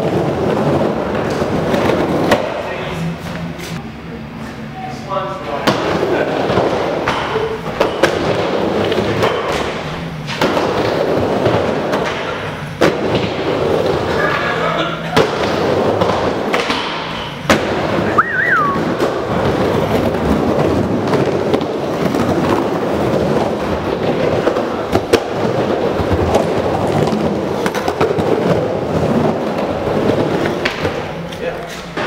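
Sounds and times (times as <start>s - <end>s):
skateboard wheels rolling on wood: 0.0s - 3.8s, 5.6s - 32.0s
rising and falling whistle: 18.1s - 18.9s.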